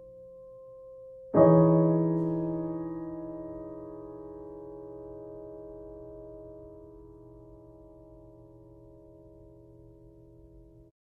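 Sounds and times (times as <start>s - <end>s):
held piano chord: 0.0s - 10.9s.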